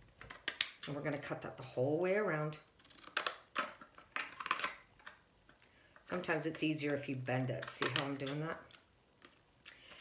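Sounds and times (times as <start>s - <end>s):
scissors snipping card: 7.5s - 8.6s.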